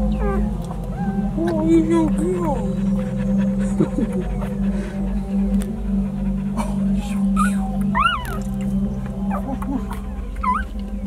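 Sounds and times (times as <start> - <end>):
puppies whimpering: 0.0 - 11.0
steady low hum: 0.0 - 11.0.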